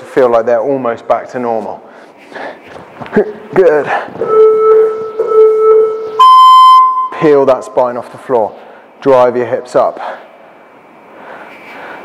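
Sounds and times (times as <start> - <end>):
faint high whine: 4.2 - 9.8
man breathing softly: 10.0 - 12.0.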